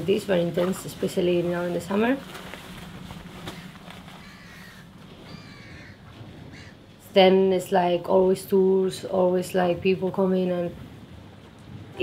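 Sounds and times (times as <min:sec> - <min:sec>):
low steady hum: 0:00.0 - 0:12.0
faint bird calls: 0:03.4 - 0:06.9.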